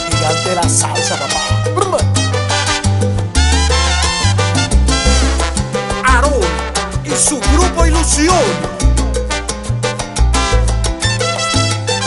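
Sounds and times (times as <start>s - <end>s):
bass line: 0.0s - 12.0s
percussion: 0.0s - 12.0s
salsa band playing: 0.0s - 12.0s
brass section: 2.2s - 12.0s.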